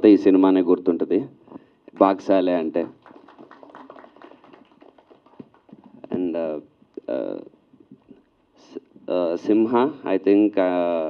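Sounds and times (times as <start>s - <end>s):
light applause: 2.0s - 6.1s.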